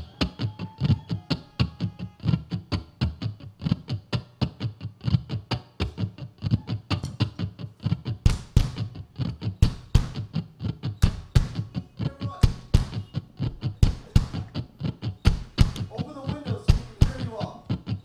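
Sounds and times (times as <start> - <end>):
acoustic guitar strumming: 1.2 - 18.0
sharp percussive hits: 11.0 - 11.7, 12.4 - 13.1, 15.2 - 15.9.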